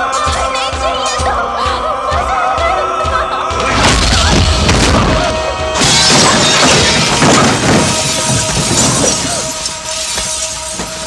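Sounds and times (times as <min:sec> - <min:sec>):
background music: 0:00.0 - 0:11.0
glass shattering: 0:05.8 - 0:11.0.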